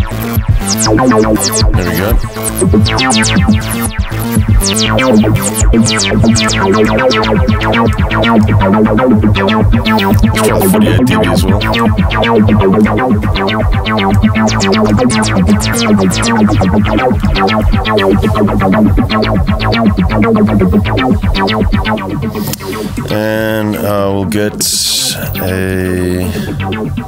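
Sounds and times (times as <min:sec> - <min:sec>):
steady low synth note: 0:00.0 - 0:27.0
synth plucky notes jumping pitch: 0:00.0 - 0:27.0.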